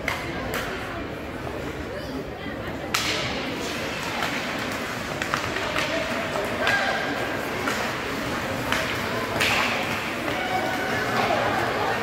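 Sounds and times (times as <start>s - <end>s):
stick and puck clicks: 0.0s - 0.8s, 2.9s - 11.8s
murmur of spectators: 0.0s - 12.0s
sharp puck crack: 2.9s - 10.4s.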